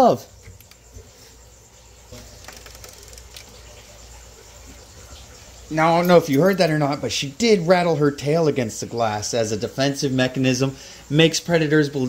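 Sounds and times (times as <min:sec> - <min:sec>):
snake tail rattling buzz: 0:00.3 - 0:07.7.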